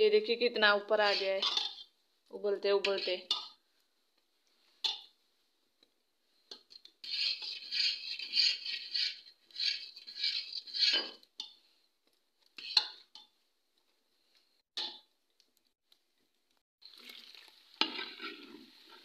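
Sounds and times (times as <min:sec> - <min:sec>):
metal ladle scraping steel pot: 0:01.0 - 0:01.9, 0:02.8 - 0:03.6, 0:06.8 - 0:11.2, 0:12.6 - 0:13.1.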